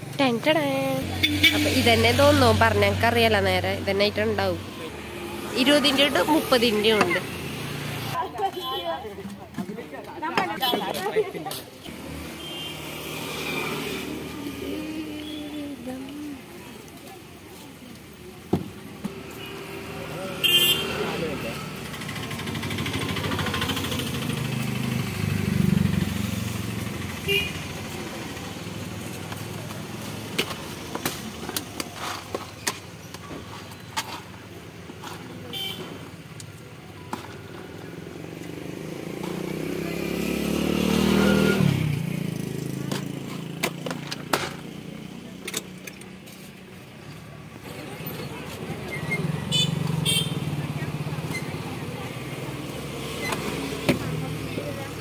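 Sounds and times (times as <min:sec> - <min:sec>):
street noise: 0:00.0 - 0:55.0
passing vehicle engine hum: 0:19.7 - 0:29.4, 0:38.4 - 0:43.6.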